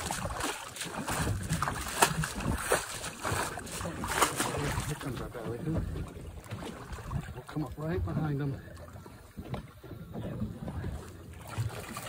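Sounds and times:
water lapping against boat hull: 0:00.0 - 0:12.0
wind buffeting microphone: 0:00.0 - 0:12.0.

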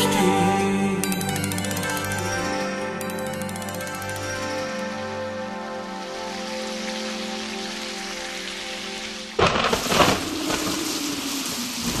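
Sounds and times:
heavy rain hissing: 0:05.9 - 0:12.0
thunderclap: 0:09.4 - 0:12.0.

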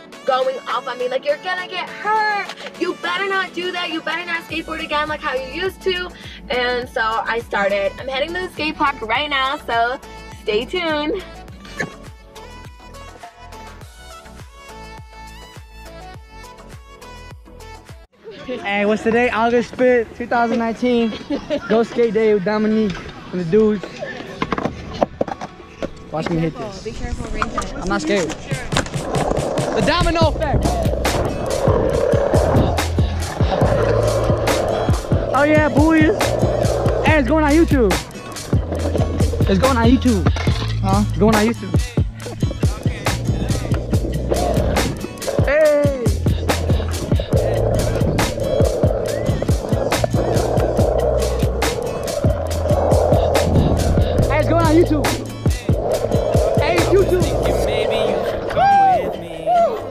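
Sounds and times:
skateboard wheels rolling on concrete: 0:18.4 - 0:59.9
skateboard clicks and knocks: 0:23.8 - 0:26.5, 0:27.3 - 0:35.3
music with fast beat: 0:28.5 - 0:58.2.

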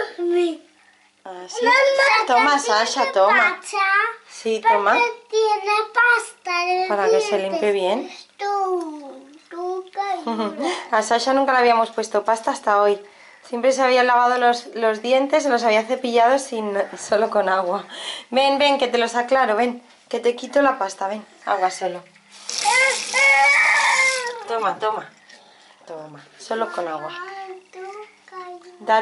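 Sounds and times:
small child's voice: 0:01.3 - 0:10.6, 0:22.5 - 0:24.6, 0:26.6 - 0:29.0
tap water splashing into sink: 0:22.2 - 0:25.3
toddler vocalizing: 0:22.5 - 0:24.6.

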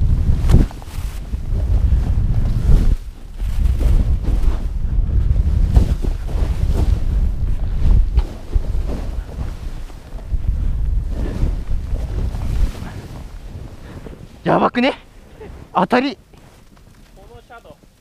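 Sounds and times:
wind buffeting microphone: 0:00.0 - 0:17.9.

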